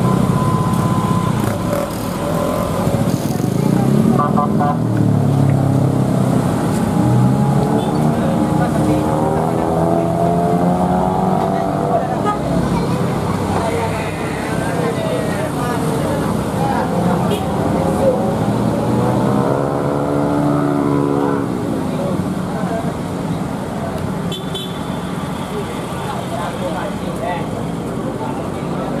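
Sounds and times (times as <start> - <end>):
road traffic engines under load: 0.0 - 29.0
engine passing by: 5.0 - 21.5.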